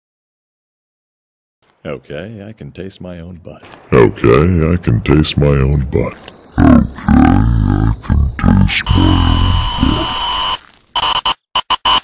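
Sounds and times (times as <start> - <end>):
harsh electronic buzz with static: 8.8 - 12.0.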